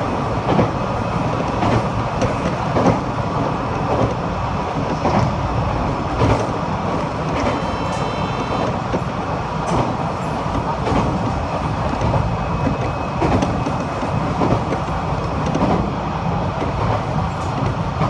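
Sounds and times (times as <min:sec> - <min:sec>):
train wheels rumbling on rail: 0:00.0 - 0:18.0.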